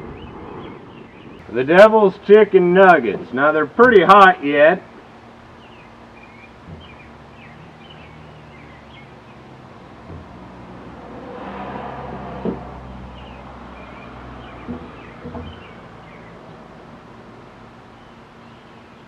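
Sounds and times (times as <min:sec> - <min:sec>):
small birds chirping: 0:00.0 - 0:01.5, 0:05.0 - 0:10.8, 0:12.4 - 0:19.0
vehicle passing: 0:06.7 - 0:17.8.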